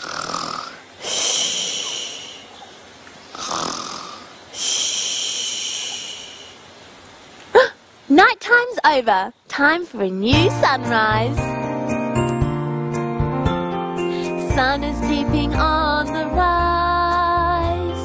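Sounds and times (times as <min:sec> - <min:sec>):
comic pretend snoring: 0:00.0 - 0:02.4, 0:03.3 - 0:05.0.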